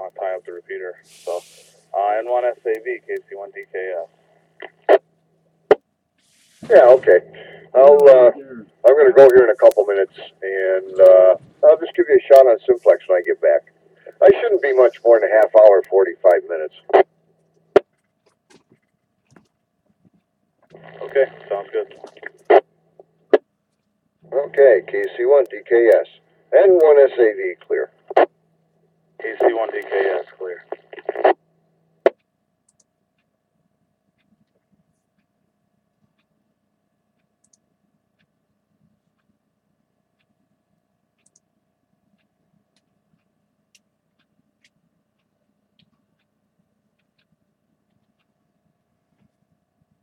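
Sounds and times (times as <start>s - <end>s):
radio carrier hum: 0.0s - 5.0s, 6.5s - 17.1s, 20.7s - 23.4s, 24.2s - 28.4s, 29.2s - 31.4s
low steady hum: 0.0s - 50.0s
radio squelch click: 4.6s - 5.0s, 9.2s - 17.1s, 20.7s - 22.7s, 26.6s - 28.3s, 29.2s - 31.4s
faint ticks: 37.1s - 37.6s, 41.2s - 41.5s.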